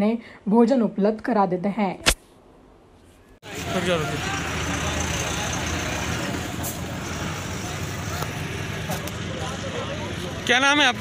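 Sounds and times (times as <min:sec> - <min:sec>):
highway traffic rumble: 0:03.4 - 0:11.0.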